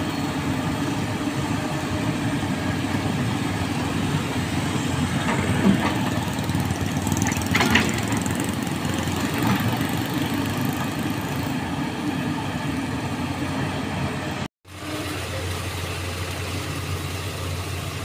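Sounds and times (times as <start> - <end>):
excavator diesel engine running: 0.0 - 18.0.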